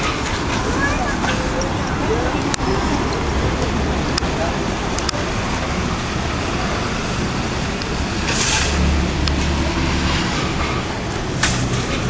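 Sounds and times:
car engines rumbling: 0.0 - 12.0
vehicle passing close by: 2.0 - 12.0.

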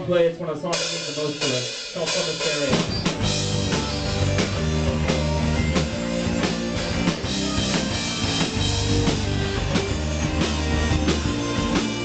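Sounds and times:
drum strikes: 0.0 - 12.0
rock band playing: 0.0 - 12.0.

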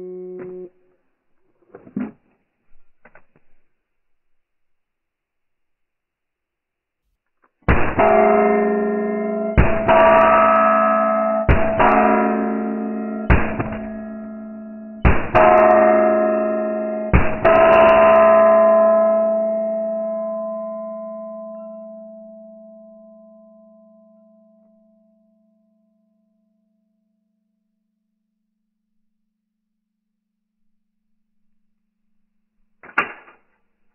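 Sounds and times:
slowed gunshots with low ringing: 7.6 - 19.0, 32.8 - 33.6.

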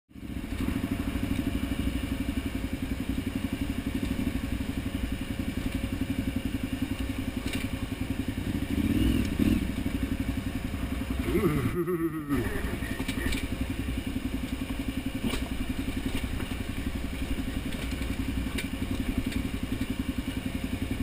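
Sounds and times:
motorcycle engine running: 0.1 - 21.0.

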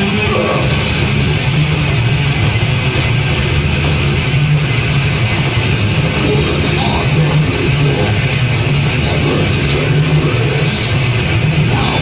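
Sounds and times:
death metal band playing live: 0.0 - 12.0.

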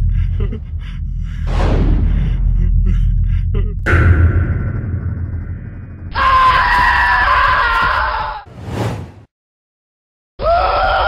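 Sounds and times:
low droning background: 0.0 - 6.6
shrill sustained scream: 6.1 - 8.5, 10.4 - 11.0.

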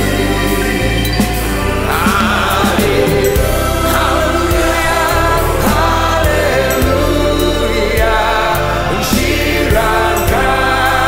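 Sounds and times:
gospel singing with backing band: 0.0 - 11.0.

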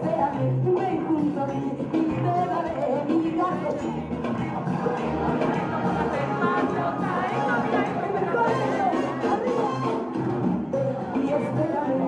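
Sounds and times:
crowd chatter: 0.0 - 12.0
rumba song through loudspeakers: 0.0 - 12.0.

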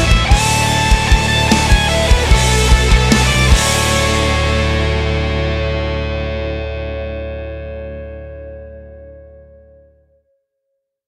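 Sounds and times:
distorted electric guitar chord ringing: 0.0 - 10.0.

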